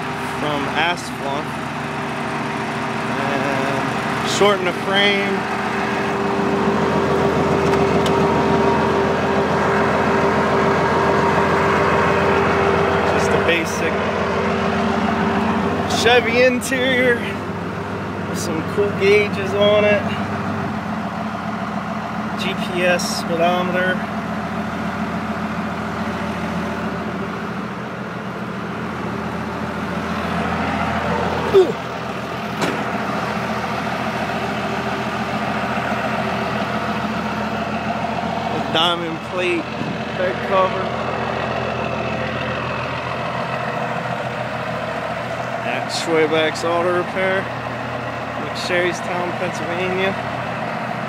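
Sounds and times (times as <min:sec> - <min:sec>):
diesel engine idling: 0:00.0 - 0:51.0.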